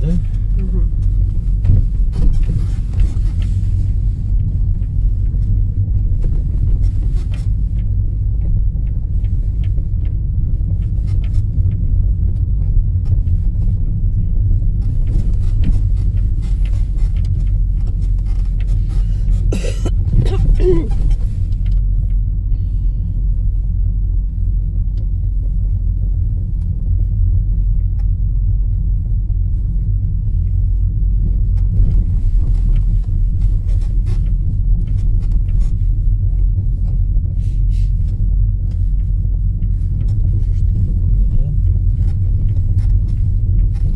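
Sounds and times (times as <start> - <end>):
car engine and tyres rumbling: 0.0 - 43.9.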